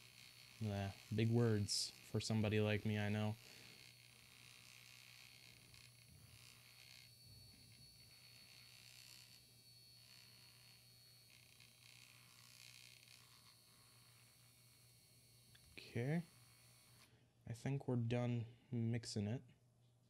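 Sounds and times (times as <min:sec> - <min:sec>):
mini mixer buzzing: 0:00.0 - 0:17.1.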